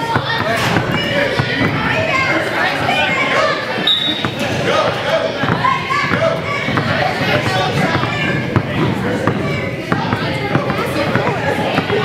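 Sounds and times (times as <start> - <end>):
basketball bouncing on gym floor: 0.0 - 2.0, 4.1 - 12.0
chatter of many voices: 0.0 - 12.0.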